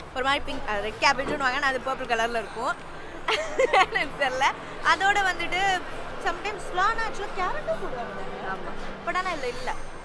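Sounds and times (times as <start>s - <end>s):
woman talking: 0.2s - 9.8s.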